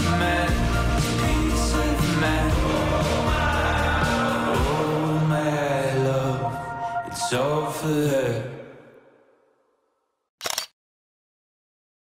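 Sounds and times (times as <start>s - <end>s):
song: 0.0s - 8.9s
camera shutter double click: 10.4s - 10.8s.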